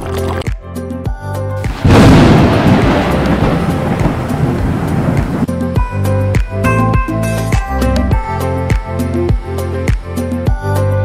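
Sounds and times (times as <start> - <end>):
background music: 0.0 - 11.0
thunder clap rumbling: 1.7 - 5.5.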